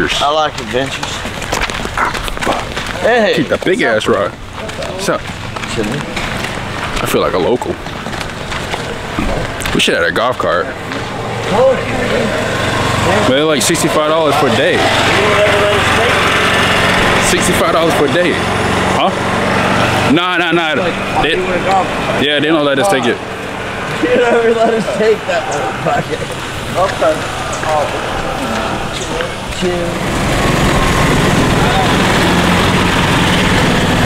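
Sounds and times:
footsteps on gravel: 0.0s - 13.2s, 22.9s - 33.1s
small petrol engine buzzing: 10.7s - 34.0s.

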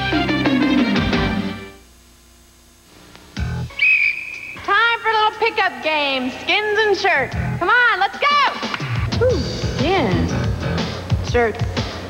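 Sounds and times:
whistle blast: 3.7s - 4.8s.

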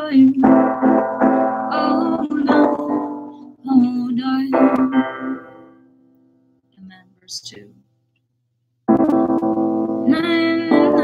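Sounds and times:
woman singing: 0.0s - 5.5s, 10.0s - 11.0s.

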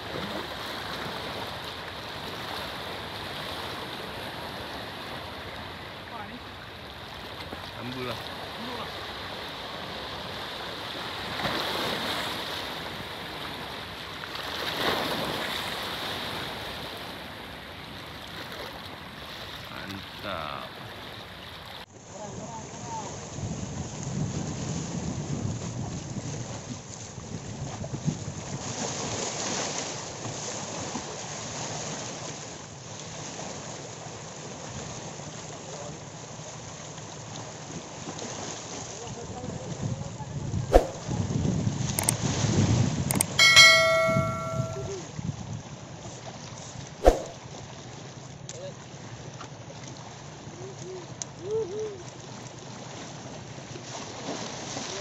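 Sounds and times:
wind buffeting microphone: 23.3s - 28.7s, 39.4s - 43.4s
brief ringing tone: 43.2s - 45.0s.

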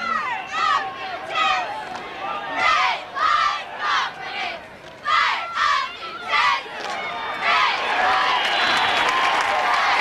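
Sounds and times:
spectators yelling: 5.1s - 10.0s.

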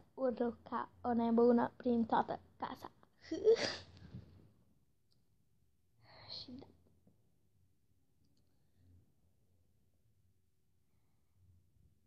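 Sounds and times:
girl's breathy whisper: 6.0s - 6.8s.

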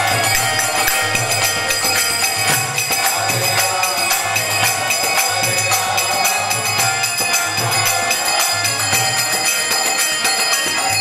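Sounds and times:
harmonium chords: 0.0s - 3.2s
hand drum: 0.0s - 3.8s
small hand cymbals: 0.0s - 11.0s.

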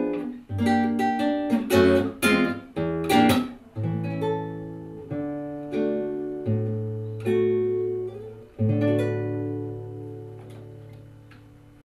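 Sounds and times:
nylon-string guitar chords: 0.0s - 11.8s.

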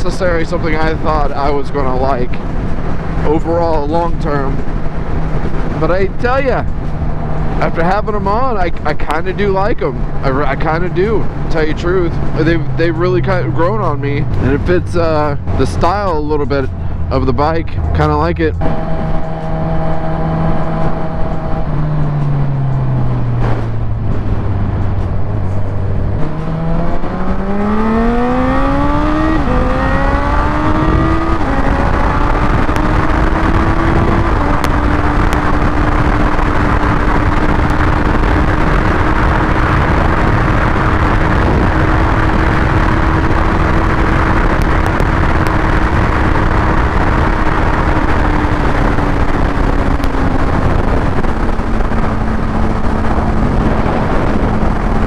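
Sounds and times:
motorcycle engine accelerating: 0.0s - 55.0s
wind rush on microphone: 0.0s - 55.0s.

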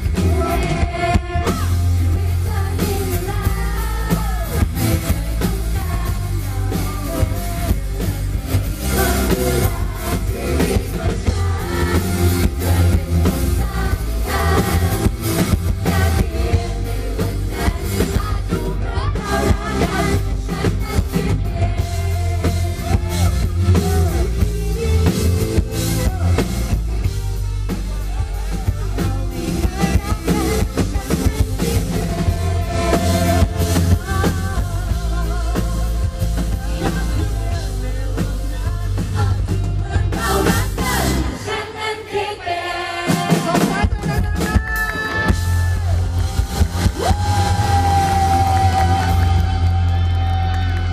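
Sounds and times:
drum kit: 0.0s - 41.7s, 42.9s - 50.9s
guitar: 0.0s - 50.9s
live band playing pop-rock: 0.0s - 50.9s.

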